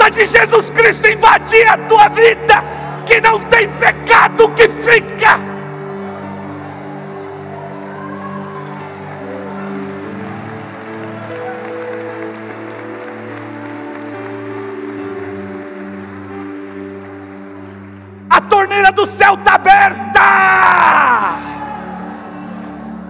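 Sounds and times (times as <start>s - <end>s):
congregation clapping: 0.0s - 20.0s
soft keyboard chords: 0.7s - 19.0s.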